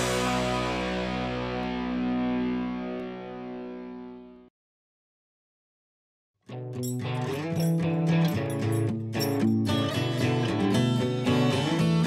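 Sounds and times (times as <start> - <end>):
distorted electric guitar chord: 0.0 - 4.5.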